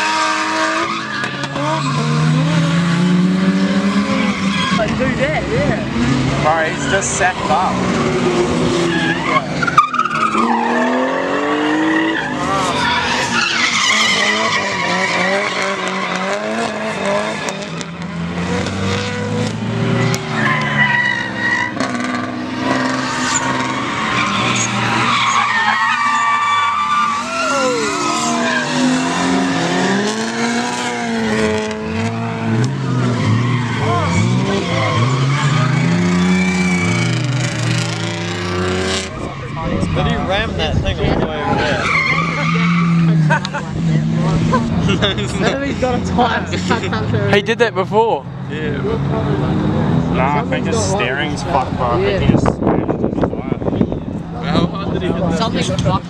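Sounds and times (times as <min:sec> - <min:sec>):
car engines revving: 0:00.0 - 0:56.0
tyres screeching on asphalt: 0:00.0 - 0:56.0.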